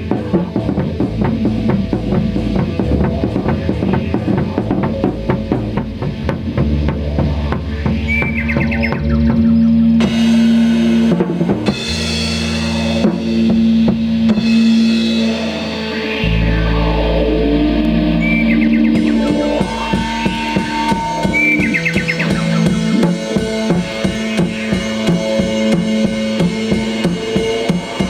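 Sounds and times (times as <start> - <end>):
drum kit busy pattern: 0.0 - 28.0
long sustained tones: 0.4 - 28.0
low held bass note: 0.5 - 27.3.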